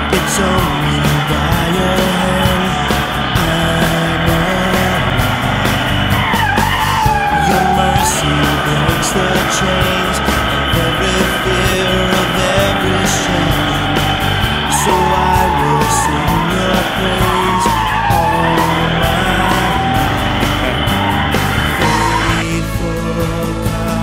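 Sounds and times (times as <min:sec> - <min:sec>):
mower engine running: 0:00.0 - 0:24.0
wavering high tone: 0:01.4 - 0:22.5.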